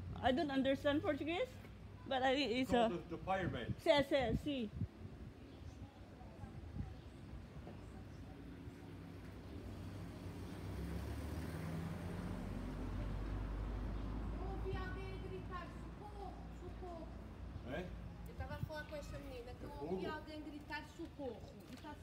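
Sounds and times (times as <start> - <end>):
voices talking: 13.8 - 22.0.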